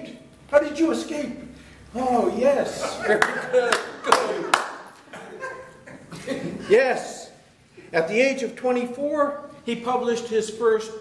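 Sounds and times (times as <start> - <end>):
sharp hand claps: 3.2 - 5.1.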